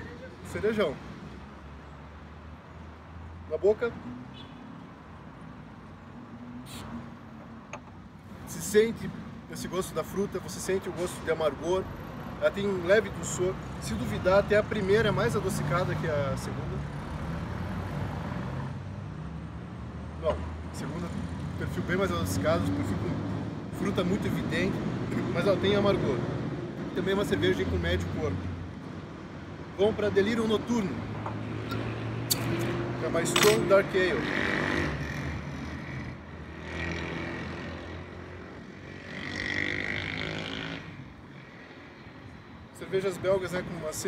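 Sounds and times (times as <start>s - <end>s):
low traffic rumble: 0.0s - 44.0s
outdoor background noise: 0.0s - 44.0s.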